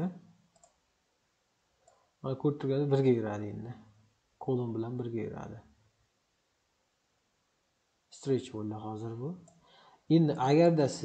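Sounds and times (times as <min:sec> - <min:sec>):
computer mouse clicks: 0:00.4 - 0:00.8, 0:01.8 - 0:02.1, 0:09.4 - 0:09.7.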